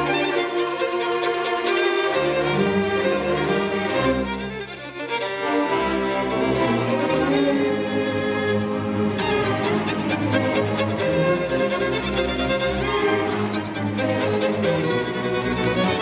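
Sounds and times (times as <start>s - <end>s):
string orchestra playing: 0.0s - 16.0s.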